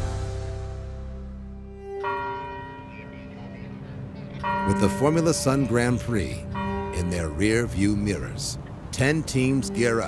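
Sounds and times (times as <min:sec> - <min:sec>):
low held music tone: 0:01.6 - 0:10.0
bell-like chime ringing: 0:01.8 - 0:08.4.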